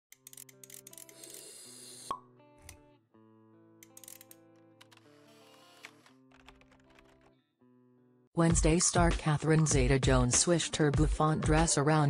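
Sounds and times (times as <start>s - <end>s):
background music with held notes: 2.1s - 12.0s.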